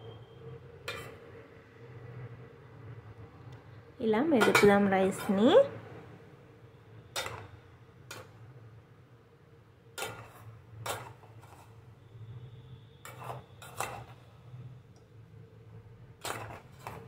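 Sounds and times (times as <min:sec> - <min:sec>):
spoon clinking on metal pot: 0:04.4 - 0:05.4.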